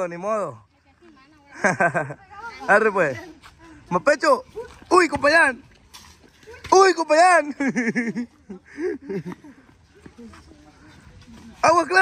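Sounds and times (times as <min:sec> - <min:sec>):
street background noise: 0:00.0 - 0:12.0.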